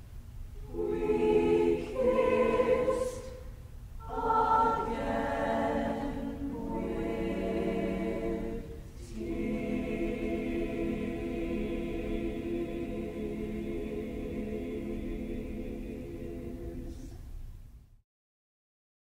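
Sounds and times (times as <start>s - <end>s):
choir singing a cappella: 0.6s - 17.3s.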